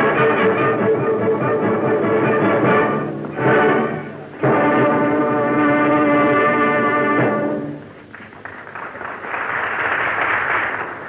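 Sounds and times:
orchestra holding loud chord: 0:00.0 - 0:07.9.

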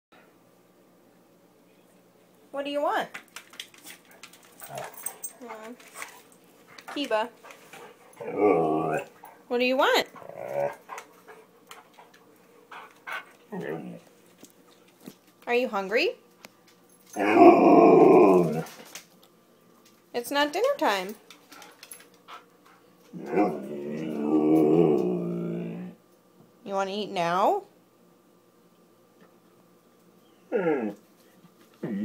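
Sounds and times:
dog grumbling call: 0:08.2 - 0:09.1, 0:10.1 - 0:10.8, 0:13.5 - 0:14.1, 0:17.2 - 0:18.8, 0:23.1 - 0:26.0, 0:30.5 - 0:31.0, 0:31.8 - 0:32.0.

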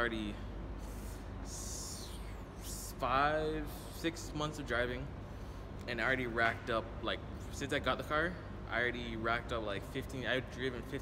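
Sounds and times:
low hum of parking garage: 0:00.0 - 0:11.0.

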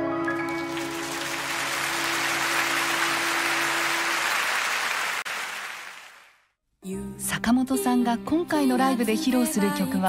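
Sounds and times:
audience applauding: 0:00.2 - 0:06.4.

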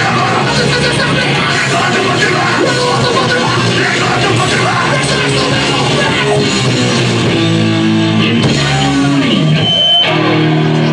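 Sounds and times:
held guitar chords: 0:00.0 - 0:10.9
live rock band playing: 0:00.0 - 0:10.9.

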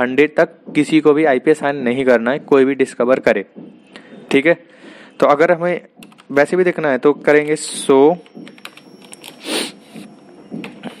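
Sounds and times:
computer keyboard keys clicking: 0:06.0 - 0:06.4, 0:08.2 - 0:09.3.

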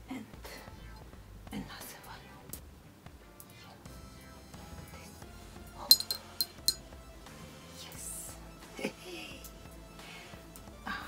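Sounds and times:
glass clicking: 0:05.9 - 0:06.8.

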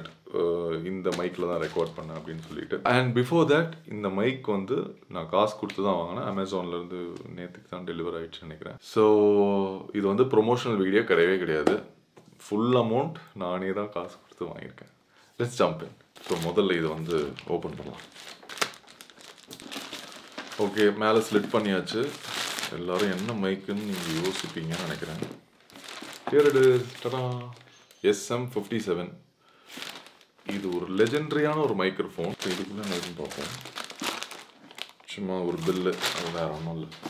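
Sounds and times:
plastic bag crinkling: 0:01.0 - 0:02.7, 0:16.1 - 0:28.0, 0:29.6 - 0:37.0
man's voice: 0:26.3 - 0:29.1, 0:30.5 - 0:33.7, 0:35.1 - 0:37.0.

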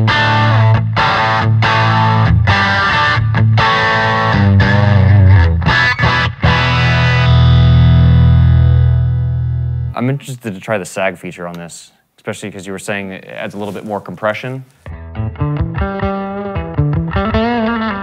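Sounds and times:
overdriven electric guitar chords: 0:00.0 - 0:09.9, 0:14.9 - 0:18.0.

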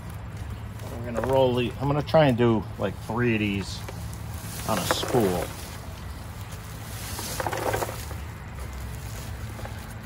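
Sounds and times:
steady low rumble: 0:00.0 - 0:10.0
fabric rustling and scraping: 0:03.5 - 0:10.0.

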